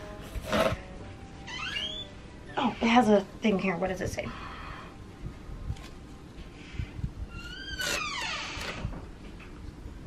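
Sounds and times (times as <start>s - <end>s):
high-pitched squeak: 1.5s - 2.2s.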